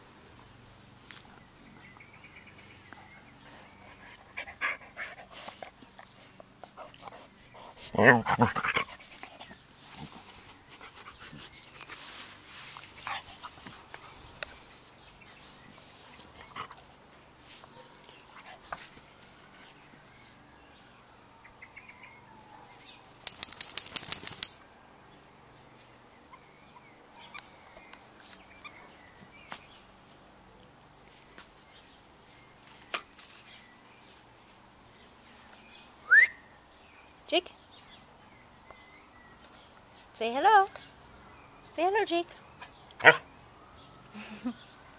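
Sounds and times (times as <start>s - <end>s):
rustling in grass: 9.1s - 16.4s
person whistling upward: 36.1s - 36.4s.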